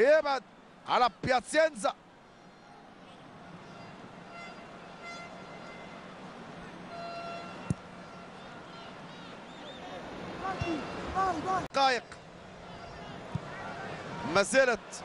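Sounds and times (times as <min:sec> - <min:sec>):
stadium crowd hum: 0:00.0 - 0:15.0.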